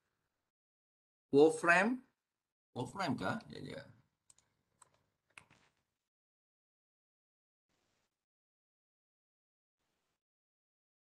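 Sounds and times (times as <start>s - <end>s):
faint clicks: 4.3s - 5.6s.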